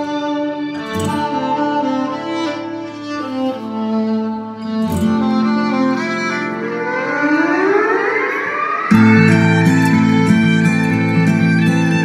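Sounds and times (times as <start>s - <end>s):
violin duet music: 0.0s - 12.0s
music beat: 0.1s - 12.0s
rising sweep: 6.2s - 11.6s.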